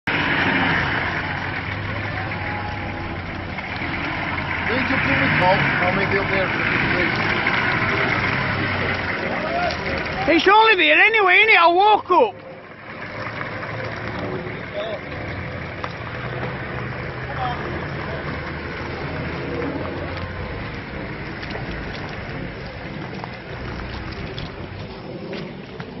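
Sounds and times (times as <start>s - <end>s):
car engine running at low revs: 0.0s - 11.0s, 12.3s - 26.0s.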